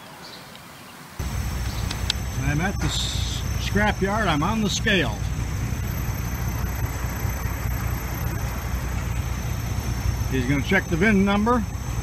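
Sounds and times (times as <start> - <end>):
high-pitched insect drone: 1.2 - 12.0
low rumble: 1.2 - 12.0.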